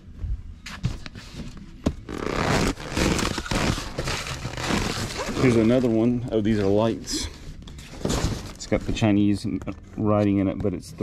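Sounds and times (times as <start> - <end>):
plastic stretch wrap crinkling: 2.1 - 7.2
cardboard boxes scraping: 2.2 - 6.9, 7.7 - 9.2.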